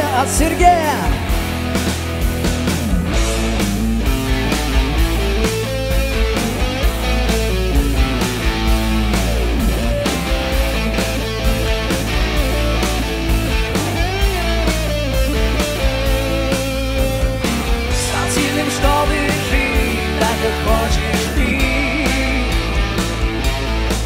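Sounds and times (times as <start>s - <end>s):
bass: 0.0s - 24.0s
electric guitar solo: 0.0s - 24.0s
steady drum beat: 0.0s - 24.0s.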